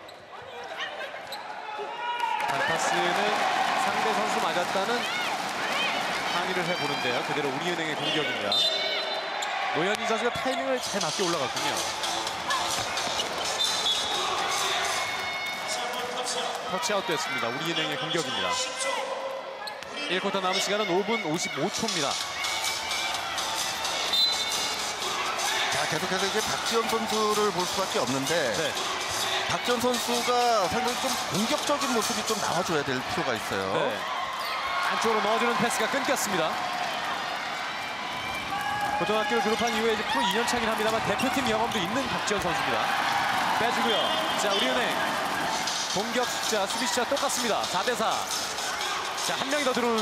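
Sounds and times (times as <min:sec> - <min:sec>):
crowd murmur in arena: 0:00.0 - 0:50.0.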